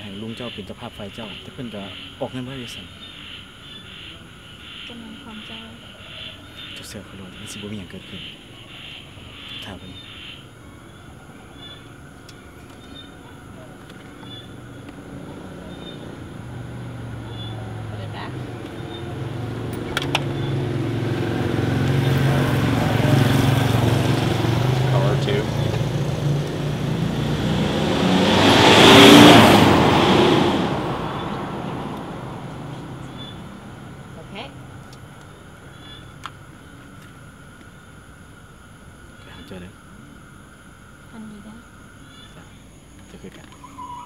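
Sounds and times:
vehicle passing by: 13.3 - 35.7.

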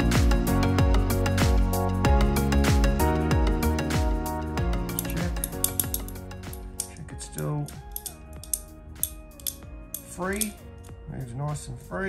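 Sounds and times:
background music held tones: 0.0 - 12.0
small metal parts clicking: 4.9 - 7.0, 7.6 - 10.9.

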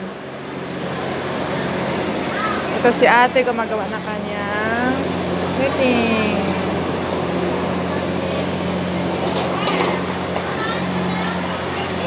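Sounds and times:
city road traffic: 0.0 - 12.0.

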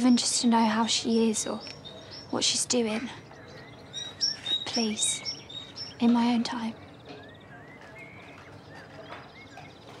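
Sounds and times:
faint bird trill: 0.0 - 10.0
small birds chirping: 0.0 - 10.0.

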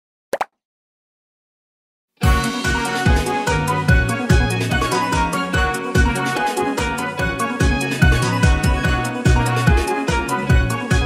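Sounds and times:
cartoon pop sound effects: 0.3 - 0.6.

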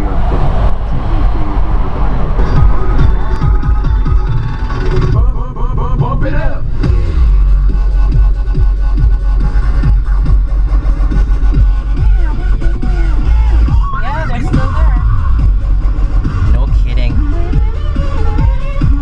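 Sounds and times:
electronic dance music: 2.4 - 19.0.

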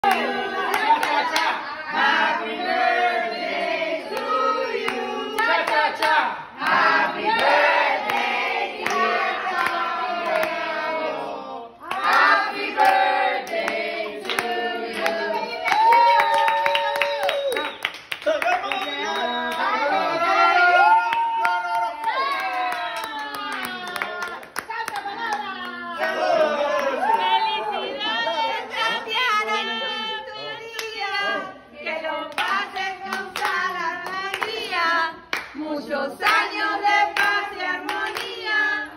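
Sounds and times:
people singing a celebration song: 0.0 - 16.3, 23.4 - 38.9
people clapping along: 0.0 - 27.5, 30.4 - 38.9
hand claps: 13.5 - 19.6, 32.3 - 35.6.

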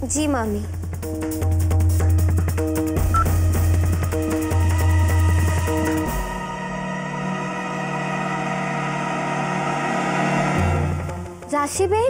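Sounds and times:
sustained music chords: 0.9 - 11.5.

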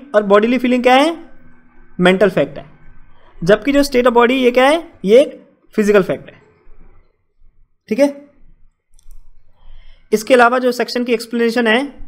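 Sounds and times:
man's voice: 3.4 - 6.4
soft breath: 9.2 - 10.2.

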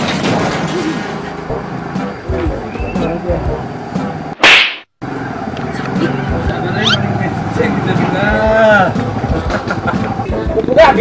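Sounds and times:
background music: 1.4 - 4.4, 5.7 - 11.0
whip-like swish: 4.4 - 4.9.

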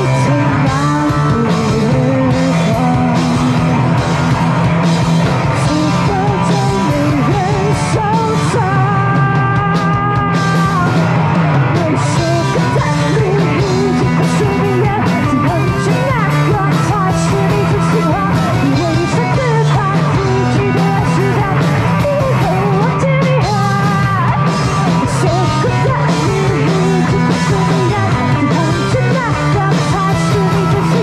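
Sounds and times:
woman singing: 0.0 - 4.2, 5.6 - 31.0
live rock band playing: 0.0 - 31.0.

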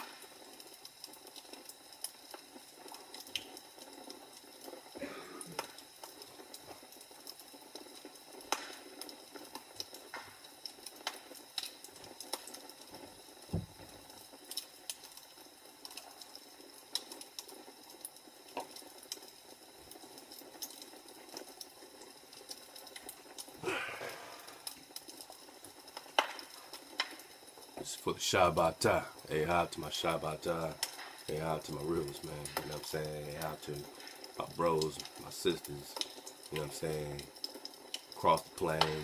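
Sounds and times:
log fire crackling and popping: 0.0 - 39.0
sharp pops from logs: 8.5 - 8.8, 26.1 - 27.2.

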